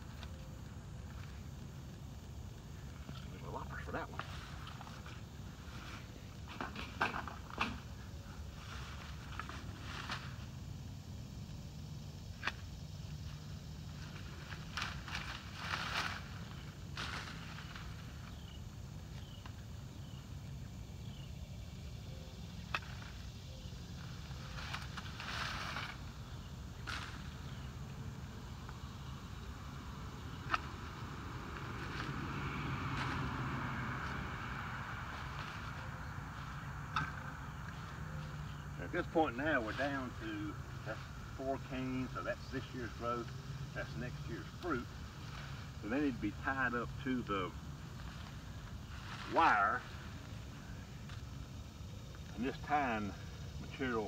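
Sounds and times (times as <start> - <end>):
rustling of canes and leaves: 0.0 - 54.0.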